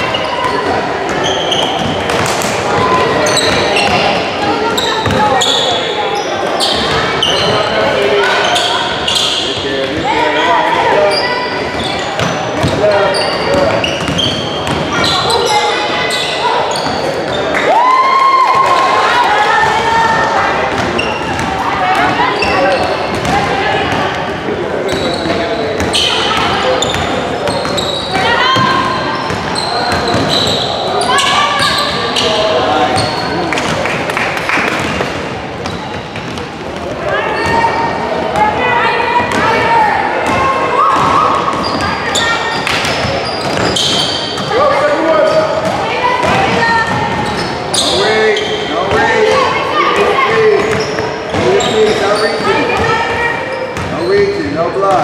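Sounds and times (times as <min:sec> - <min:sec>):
shouts and chatter: 0:00.0 - 0:55.0.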